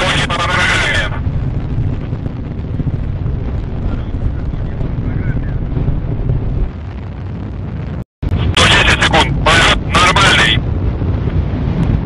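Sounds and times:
rocket engines rumbling: 0:00.0 - 0:12.0.

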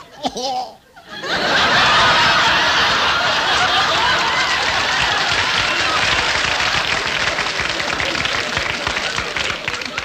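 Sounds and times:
audience laughing: 0:00.0 - 0:10.0
audience applauding: 0:01.6 - 0:10.0.

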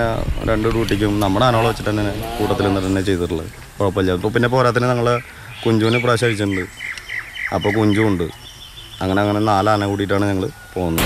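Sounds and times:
man talking: 0:00.0 - 0:06.8, 0:07.5 - 0:08.4, 0:09.0 - 0:11.0
small birds chirping: 0:00.0 - 0:11.0.

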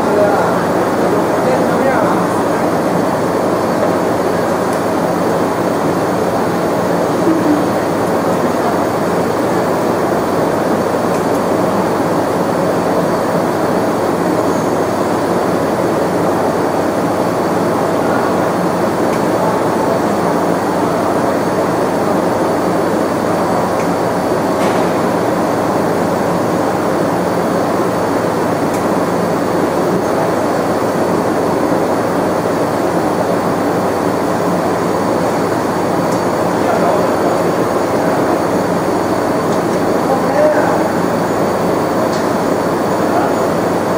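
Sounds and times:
laser machine whirring: 0:00.0 - 0:43.9.

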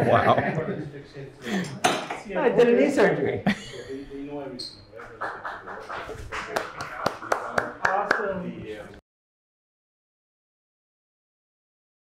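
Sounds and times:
people laughing: 0:00.0 - 0:01.8, 0:03.4 - 0:04.3, 0:05.0 - 0:07.8
people talking: 0:00.0 - 0:09.0.

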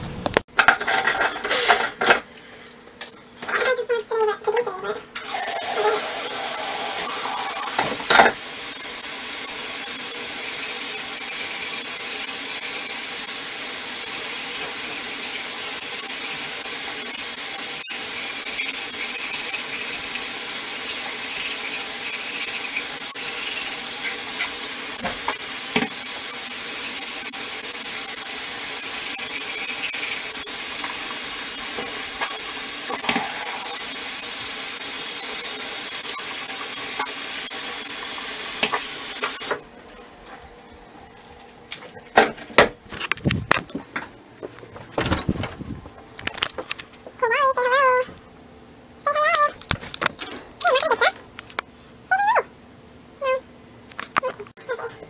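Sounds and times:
toothbrush brushing teeth: 0:14.8 - 0:39.5.

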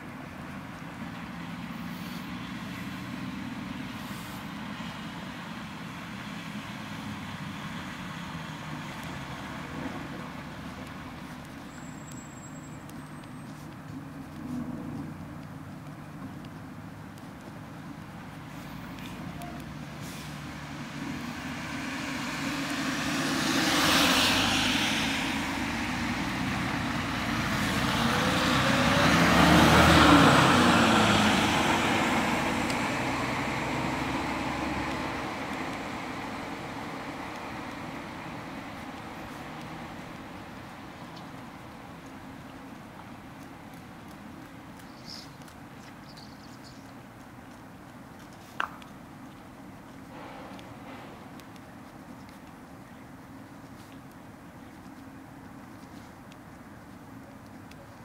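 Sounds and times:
traffic noise: 0:00.0 - 0:58.0
vehicle engine rumbling: 0:00.0 - 0:58.0.

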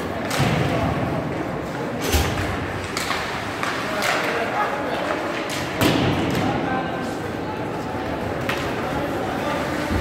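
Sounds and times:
voices: 0:00.0 - 0:10.0
hockey sticks and puck knocking: 0:02.8 - 0:06.6.

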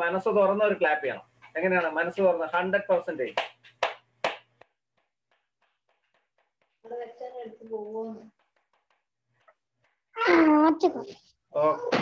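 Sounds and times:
hands clapping: 0:03.2 - 0:06.8.

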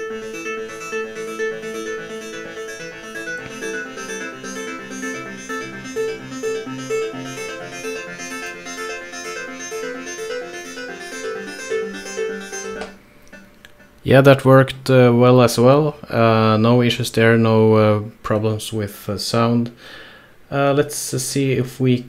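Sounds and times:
repeating synth notes: 0:00.0 - 0:14.3.

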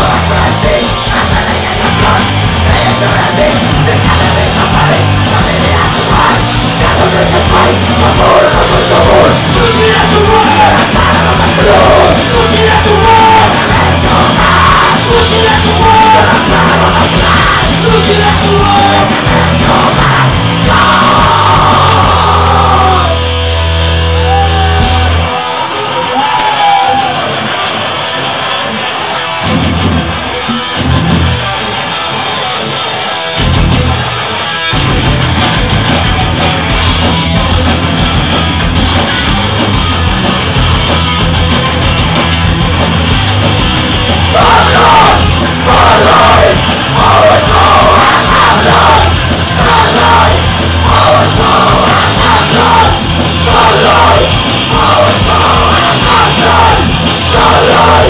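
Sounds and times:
deep bass: 0:00.0 - 0:25.3, 0:29.4 - 0:31.7, 0:33.4 - 0:58.0
shouted lead vocal: 0:00.0 - 0:30.6, 0:44.0 - 0:58.0
drums: 0:00.0 - 0:58.0
electric guitars: 0:00.0 - 0:58.0
punk rock band playing: 0:00.0 - 0:58.0.

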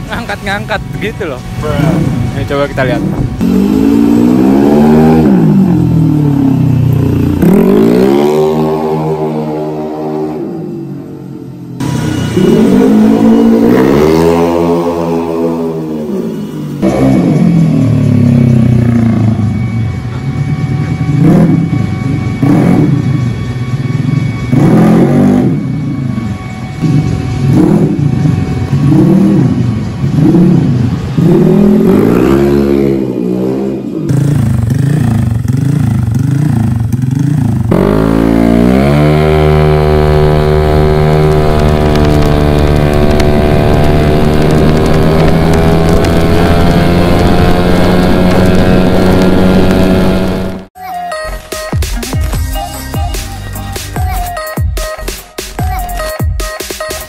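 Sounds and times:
scooter engine revving: 0:00.0 - 0:50.8.

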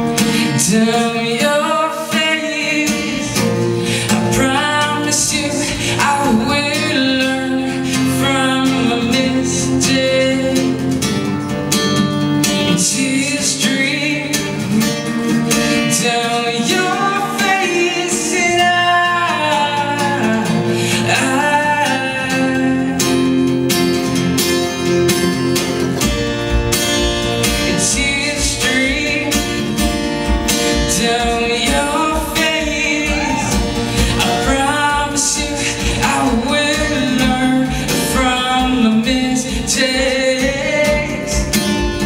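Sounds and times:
man singing: 0:00.0 - 0:11.6, 0:12.4 - 0:24.2, 0:27.3 - 0:42.0
strummed acoustic guitar: 0:00.0 - 0:42.0.

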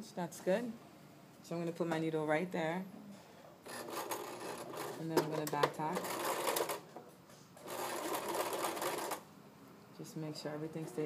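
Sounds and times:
electric sewing machine stitching: 0:03.7 - 0:05.1, 0:06.0 - 0:06.8, 0:07.6 - 0:09.2.

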